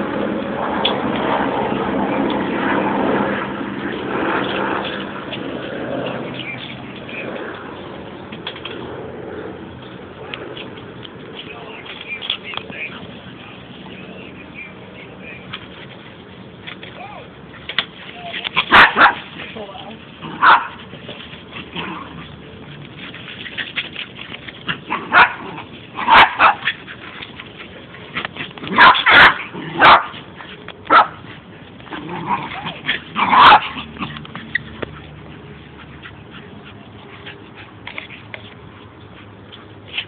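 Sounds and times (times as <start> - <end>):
dog barking: 18.7 - 19.2, 20.4 - 20.8, 25.0 - 25.4, 26.0 - 26.6, 28.7 - 30.1, 30.9 - 31.2, 33.2 - 33.7.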